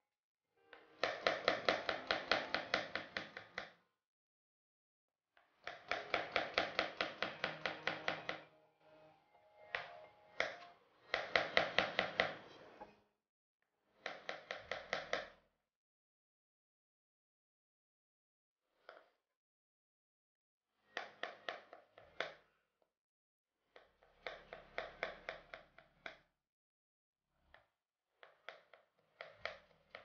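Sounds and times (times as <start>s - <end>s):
knife chopping on cutting board: 5.7s - 8.5s.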